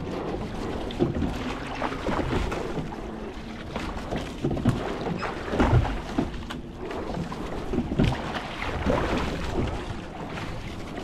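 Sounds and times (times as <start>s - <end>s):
oar blades splashing: 0.0s - 11.0s
water rushing along hull: 0.0s - 11.0s.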